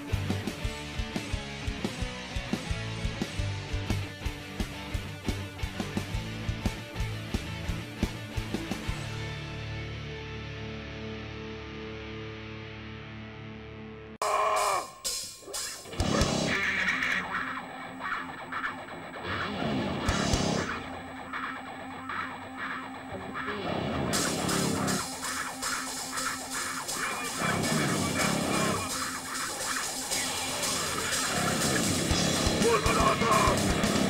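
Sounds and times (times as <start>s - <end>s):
bass guitar: 0.0s - 34.0s
electric guitar riff: 0.0s - 34.0s
drums and cymbals: 14.2s - 17.0s, 24.1s - 34.0s.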